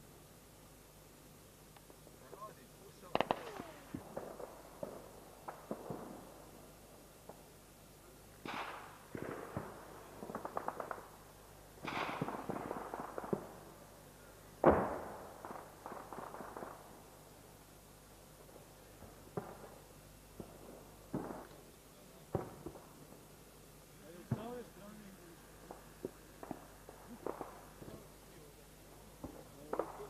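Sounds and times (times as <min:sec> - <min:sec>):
automatic gunfire bursts: 0:03.1 - 0:06.0
single gunshots: 0:03.1 - 0:06.2, 0:11.8 - 0:13.4.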